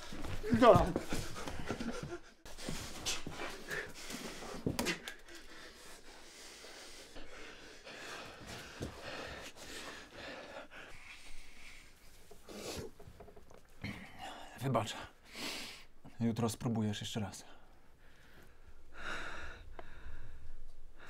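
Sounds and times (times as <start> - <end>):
man panting: 0.0 - 12.8.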